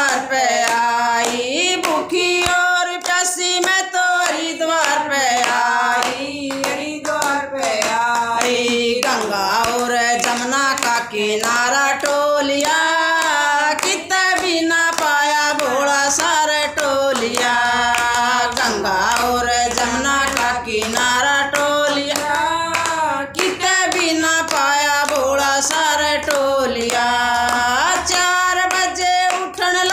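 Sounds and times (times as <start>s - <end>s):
hand clapping: 0.0s - 29.9s
women singing together: 0.0s - 29.9s.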